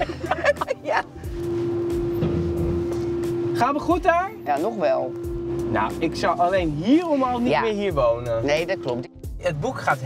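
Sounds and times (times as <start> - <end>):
low cabin rumble: 0.0 - 9.1
parking sensor steady tone: 1.3 - 9.1.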